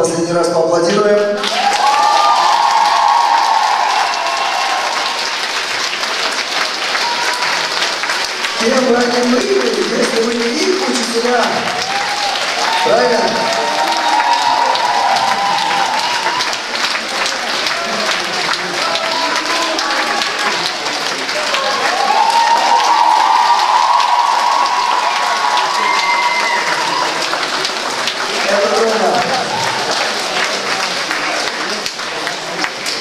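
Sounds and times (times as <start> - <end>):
crowd applauding: 1.2 - 33.0.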